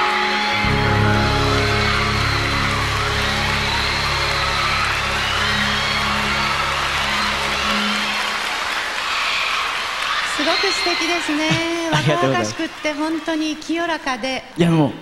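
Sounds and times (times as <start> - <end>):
audience applause: 0.0 - 13.9
band holding final chord: 0.5 - 8.7.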